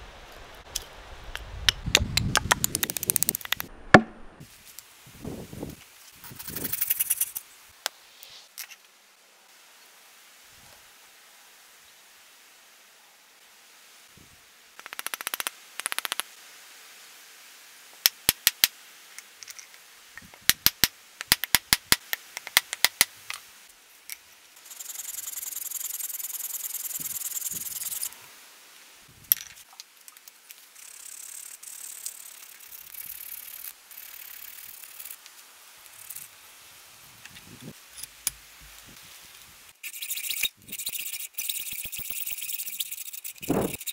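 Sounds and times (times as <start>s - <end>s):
hammer striking wooden wedge: 3.4s - 4.4s.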